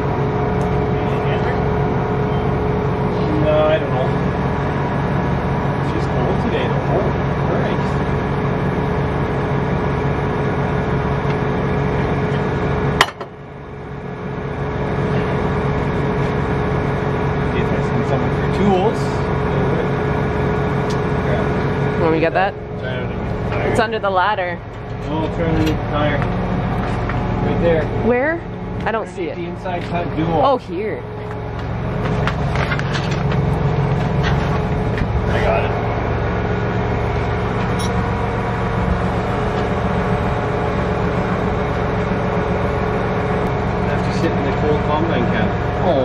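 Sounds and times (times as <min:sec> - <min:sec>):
constant whine: 0:00.0 - 0:46.0
diesel engine idling: 0:00.0 - 0:46.0.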